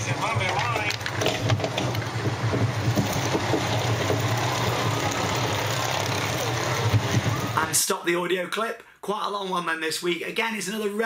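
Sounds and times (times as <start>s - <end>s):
train clattering on track: 0.0s - 7.7s
roller coaster rumble: 0.0s - 7.8s.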